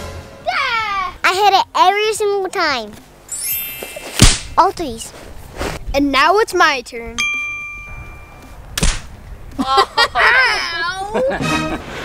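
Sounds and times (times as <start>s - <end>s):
bright bell ding: 3.3s - 4.2s, 7.1s - 8.5s
short sharp whack: 4.1s - 4.6s, 8.8s - 9.1s.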